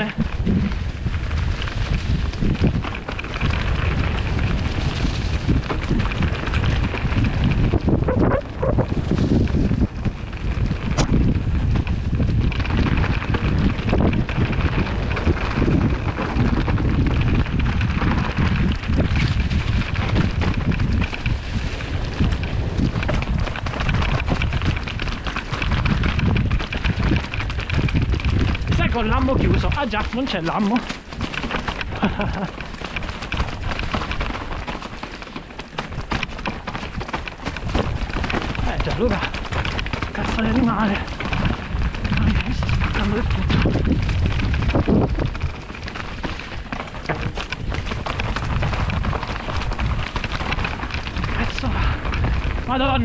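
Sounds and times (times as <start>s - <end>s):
bike tyres rolling on dirt trail: 0.0s - 53.0s
wind buffeting microphone: 0.0s - 53.0s.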